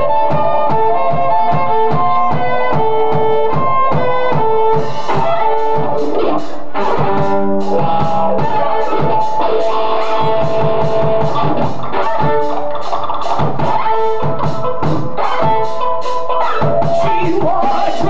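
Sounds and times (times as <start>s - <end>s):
bass guitar: 0.0s - 18.0s
drum kit beat: 0.0s - 18.0s
electric guitar: 0.0s - 18.0s.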